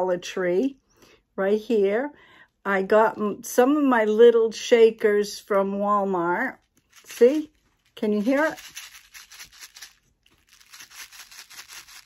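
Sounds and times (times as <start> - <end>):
gems rattling in shaker: 6.6 - 12.0.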